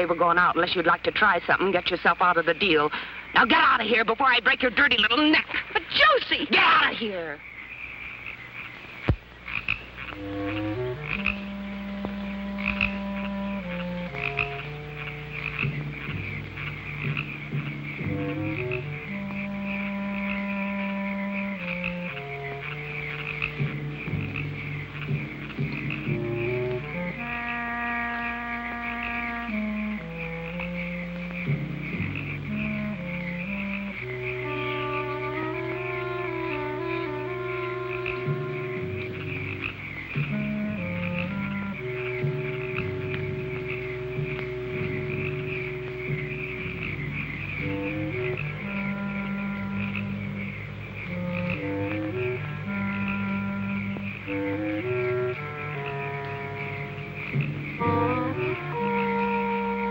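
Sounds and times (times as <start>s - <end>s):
frogs calling: 0.0s - 59.9s
slow music with held notes: 10.0s - 59.9s.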